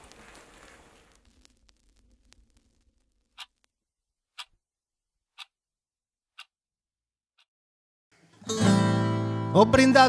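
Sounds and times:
clock ticking: 4.3 - 4.6, 5.3 - 5.6, 6.3 - 6.5.

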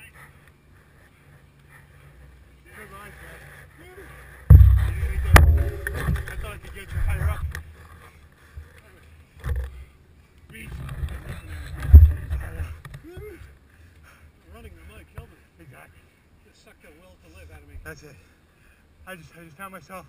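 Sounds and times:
wind buffeting camera: 4.5 - 7.7, 11.0 - 12.8.

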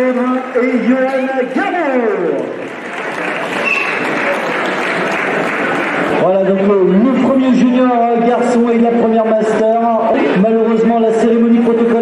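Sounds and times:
man's amplified voice: 0.0 - 2.7, 6.1 - 12.0
audience applauding: 0.0 - 6.7.

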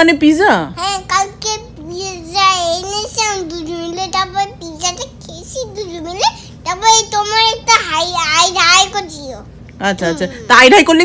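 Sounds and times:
toddler sing-song vocalising: 0.8 - 9.5.

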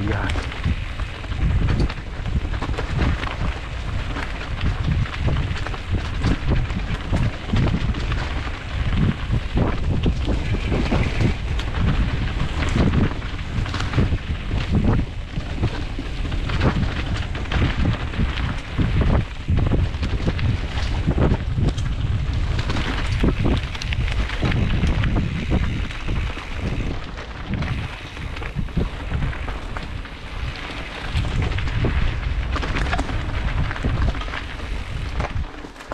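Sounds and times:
bike knocking and rattling: 0.0 - 35.9
bike tyres rolling over leaves: 0.0 - 35.9
wind buffeting microphone: 0.0 - 35.9.

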